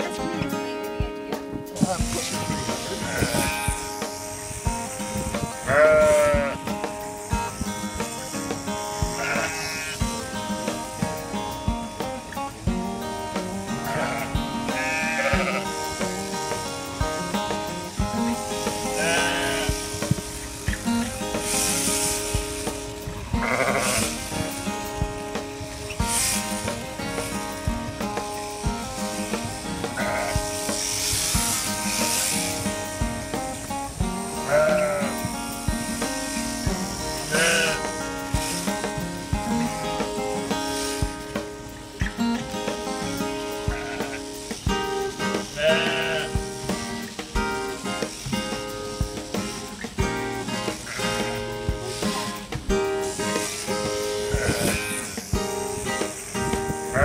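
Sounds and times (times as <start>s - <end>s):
background music: 0.0s - 57.0s
sheep bleating: 2.7s - 3.9s, 5.6s - 6.7s, 9.0s - 10.0s, 13.7s - 15.8s, 18.6s - 20.0s, 23.3s - 24.5s, 29.8s - 31.0s, 34.2s - 35.6s, 37.2s - 38.0s, 43.5s - 44.4s, 45.4s - 46.6s, 50.8s - 51.4s, 54.1s - 55.2s.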